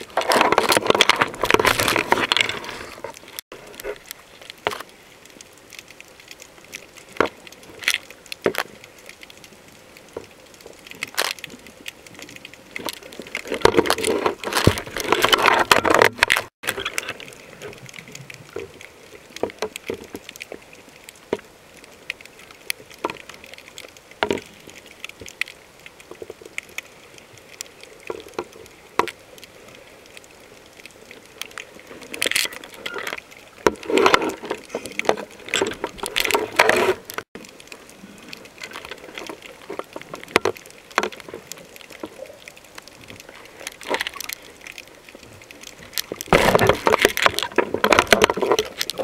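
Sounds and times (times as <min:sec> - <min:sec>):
underwater clicks and cracks: 0:00.0 - 0:49.0
faint steady hiss: 0:01.8 - 0:15.4, 0:16.7 - 0:49.0
underwater clicks and pops: 0:38.4 - 0:49.0.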